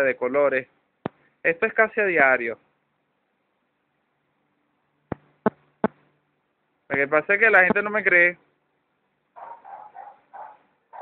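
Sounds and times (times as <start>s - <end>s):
faint dog barks: 9.3s - 11.0s.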